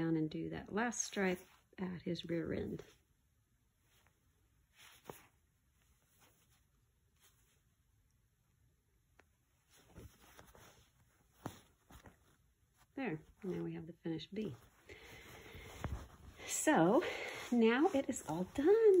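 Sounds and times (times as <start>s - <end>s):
needle and thread drawn through fabric: 2.8s - 8.3s, 9.0s - 19.0s.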